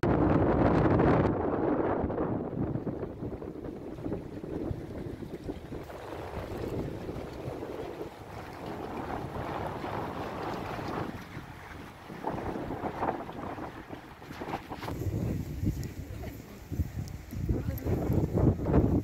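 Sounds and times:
wind buffeting microphone: 0.0 - 19.0
sea water washing against pier: 0.1 - 19.0.

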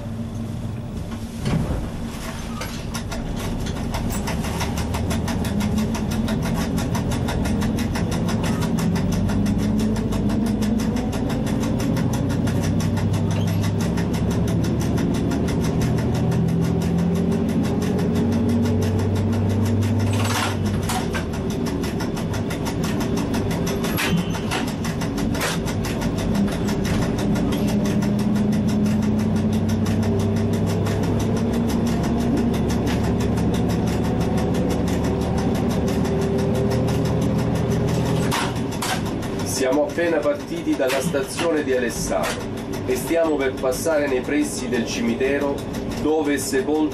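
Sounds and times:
diesel train engine running: 0.0 - 46.9.

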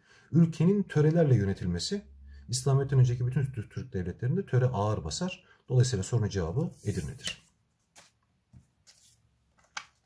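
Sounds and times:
paper rustling and tapping: 7.3 - 10.0.

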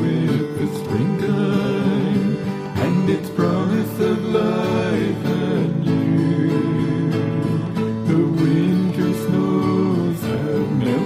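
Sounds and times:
acoustic guitar: 0.0 - 11.0
person singing: 0.0 - 11.0.

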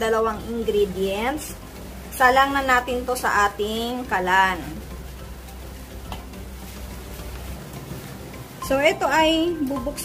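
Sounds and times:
spatula stirring thick mixture: 4.0 - 9.2.

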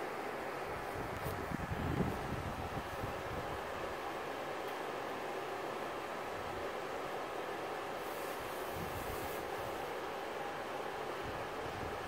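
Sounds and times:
electric fan running: 0.0 - 12.0.

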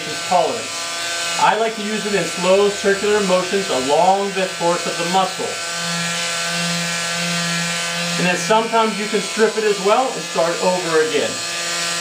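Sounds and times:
vibration device buzzing: 0.0 - 12.0.

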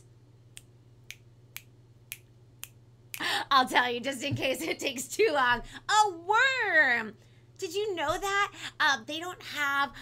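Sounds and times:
fingers snapping: 0.5 - 3.2.

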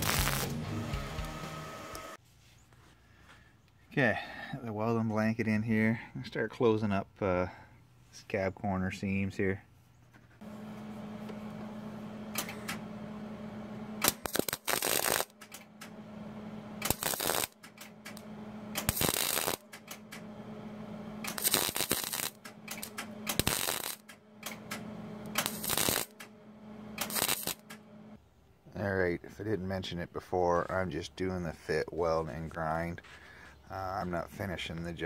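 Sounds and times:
welder crackling: 0.0 - 2.2, 12.3 - 28.2
welder low hum: 0.0 - 2.2, 10.4 - 28.2.

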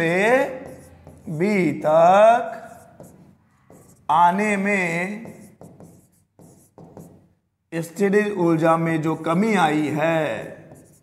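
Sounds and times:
pen scratching on display board: 0.1 - 1.4, 2.6 - 7.3, 10.3 - 11.0.

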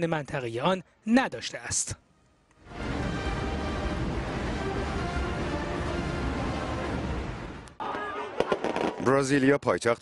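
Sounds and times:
music: 2.2 - 7.8
crowd noise: 7.8 - 9.1
firework cracks and pops: 8.4 - 9.2.

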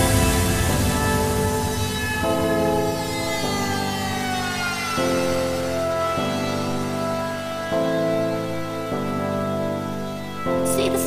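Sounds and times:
high synth tone falling in pitch: 0.0 - 10.2
sustained synth chords: 0.0 - 11.0.

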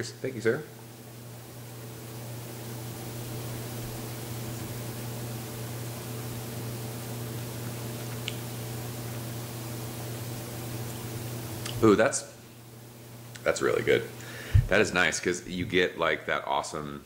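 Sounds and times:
room hiss: 0.0 - 17.0
faint click: 8.0 - 8.4.

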